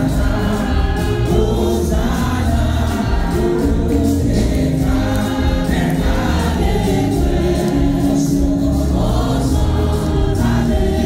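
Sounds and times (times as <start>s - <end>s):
congregation singing worship song: 0.0s - 11.0s
instrumental accompaniment with bass: 0.0s - 11.0s.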